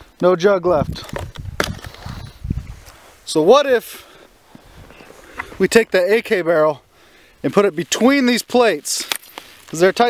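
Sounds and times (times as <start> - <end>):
camera handling knocks: 1.1 - 1.9.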